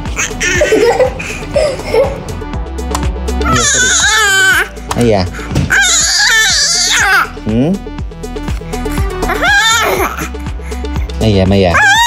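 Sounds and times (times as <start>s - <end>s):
background music with steady beat: 0.0s - 12.0s
infant crying: 3.4s - 4.8s, 5.7s - 7.4s, 8.8s - 11.0s, 11.7s - 12.0s.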